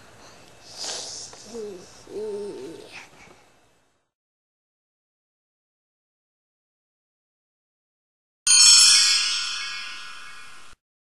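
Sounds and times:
low cooing hoots: 1.4 - 3.0.

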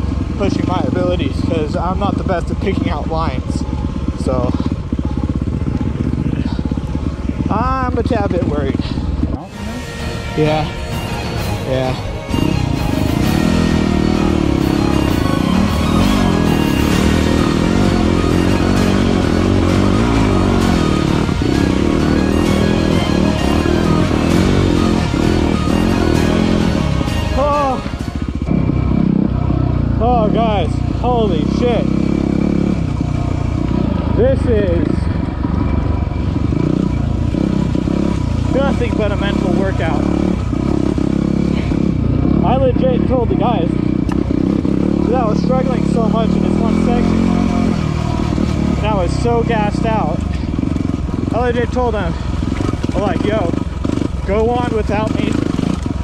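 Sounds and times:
motorcycle engine revving: 0.0 - 56.0
music: 9.5 - 28.4.

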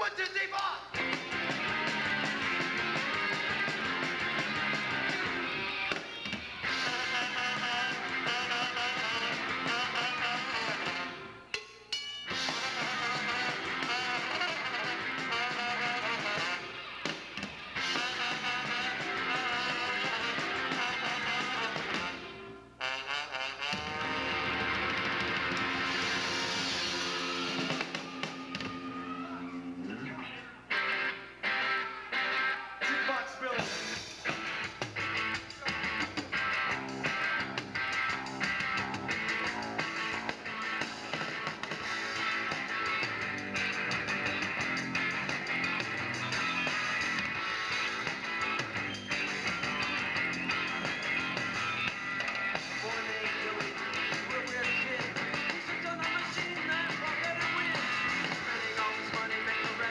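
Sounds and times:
electric guitar: 0.9 - 11.4, 12.3 - 22.6, 23.7 - 59.9
rock band playing live: 0.9 - 22.4, 23.5 - 59.9
trombone: 6.7 - 11.4, 12.3 - 16.8, 17.8 - 27.9.

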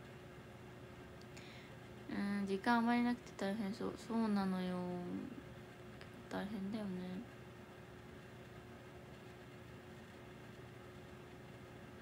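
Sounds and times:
faint constant hum: 0.0 - 12.0.

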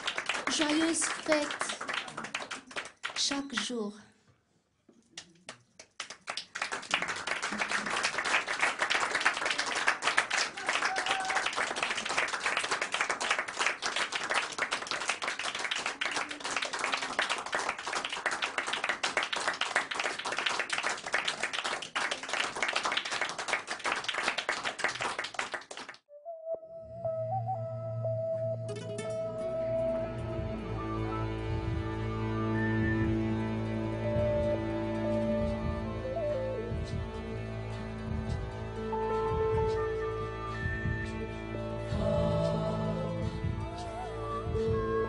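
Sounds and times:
audience applauding: 0.0 - 3.7, 5.2 - 26.0.

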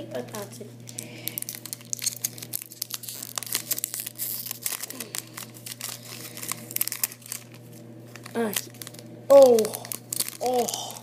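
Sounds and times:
foil wrapper crinkling and tearing: 0.9 - 11.0.

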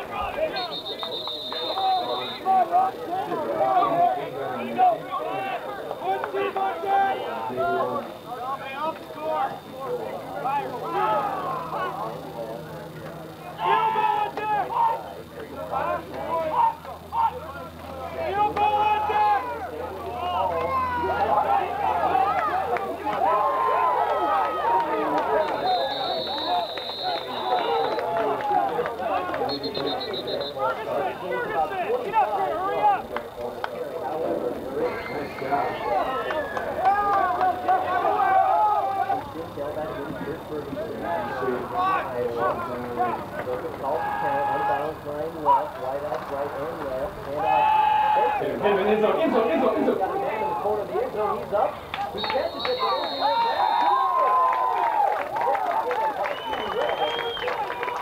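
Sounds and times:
many voices calling out: 0.0 - 56.8.

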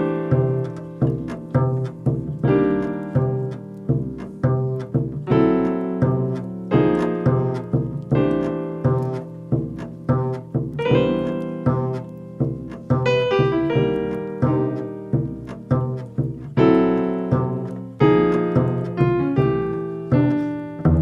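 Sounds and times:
piano chords: 0.0 - 21.0
plucked double bass: 0.0 - 21.0.

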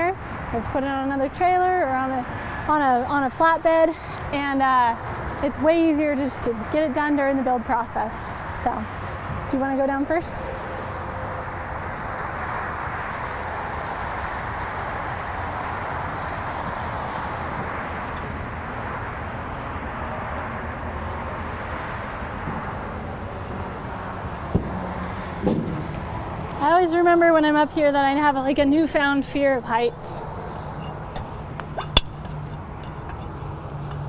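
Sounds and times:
outdoor background rush: 0.0 - 34.0.

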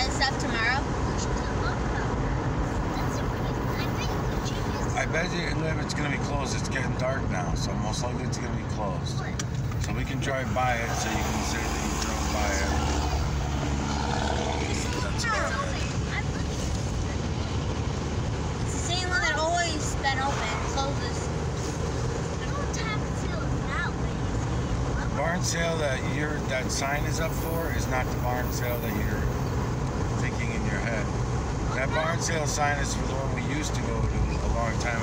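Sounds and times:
indistinct voices: 0.0 - 17.7
car engine and road noise: 0.0 - 35.0.

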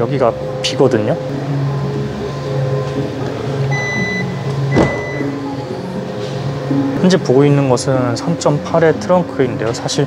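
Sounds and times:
tailgate latch clunk: 4.7 - 5.2.

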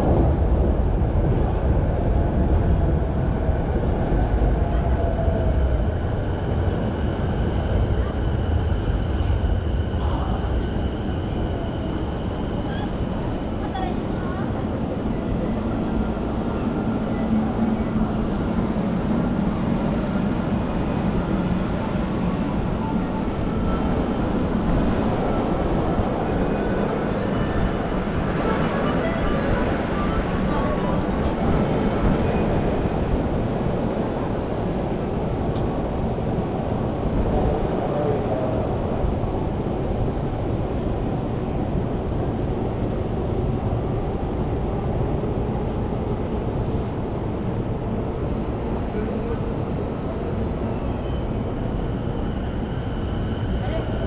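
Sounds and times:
trains rumbling: 0.0 - 54.0
voices of passersby: 0.0 - 54.0.

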